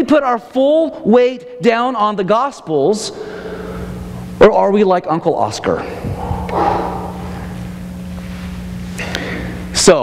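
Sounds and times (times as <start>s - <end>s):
low electrical hum: 0.0s - 10.0s
noise hiss and rumble: 0.0s - 10.0s.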